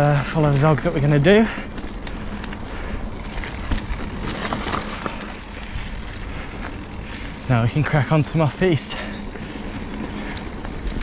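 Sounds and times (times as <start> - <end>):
bike clicks and rattles: 0.0 - 11.0
bike tyre rumble on dirt: 0.0 - 11.0.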